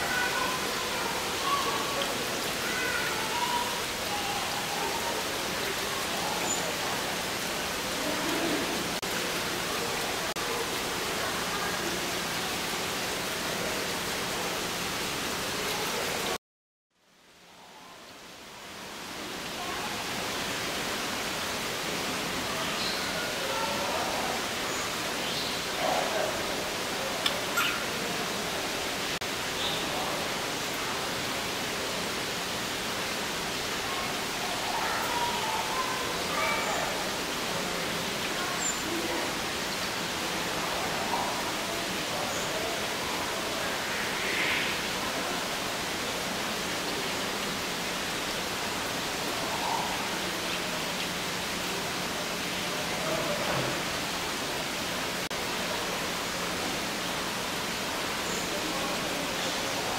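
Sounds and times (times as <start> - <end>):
faint bird chirps: 27.2 - 27.9.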